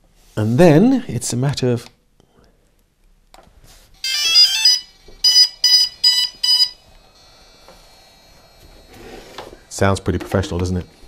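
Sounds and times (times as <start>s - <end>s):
electronic beeps: 4.0s - 6.8s
electronic chime tones: 4.0s - 6.8s.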